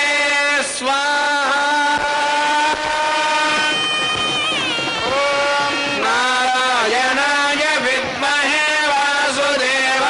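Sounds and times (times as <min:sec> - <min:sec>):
double-reed pipe long bright note: 0:02.0 - 0:07.0.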